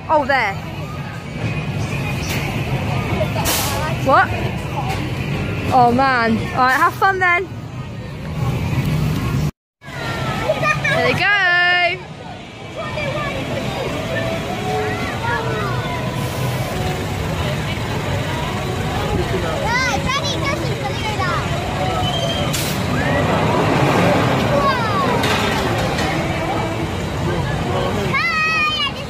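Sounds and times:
crowd and children's voices: 0.0s - 29.0s
roller coaster on steel track: 0.6s - 29.0s.

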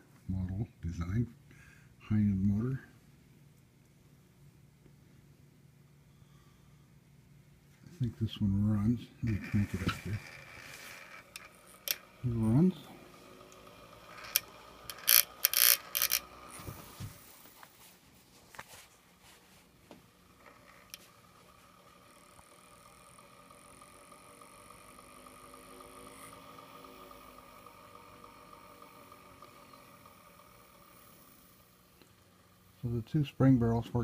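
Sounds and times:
phonograph motor whirring: 8.7s - 17.7s, 19.1s - 34.0s.

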